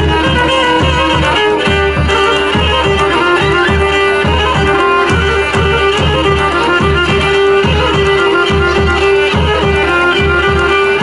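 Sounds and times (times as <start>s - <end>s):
bowed lyra dance tune: 0.0s - 11.0s
drum beating driving rhythm: 0.0s - 11.0s.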